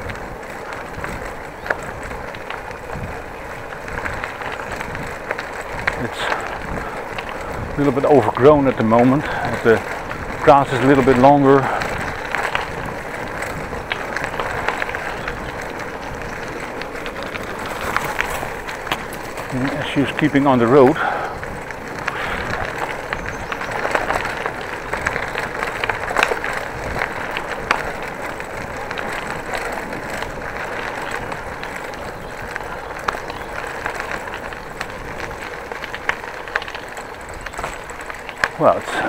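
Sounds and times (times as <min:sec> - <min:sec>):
bicycle clicks and rattles: 0:00.0 - 0:39.0
bicycle tyres on gravel: 0:00.0 - 0:39.0.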